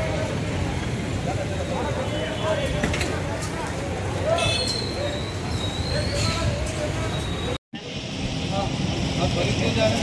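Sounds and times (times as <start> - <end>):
street traffic and motorbikes: 0.0 - 10.0.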